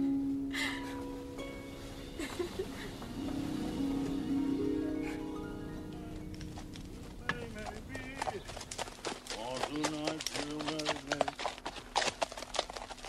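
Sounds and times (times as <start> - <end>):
horse hooves clip-clopping on dirt: 6.0 - 13.0.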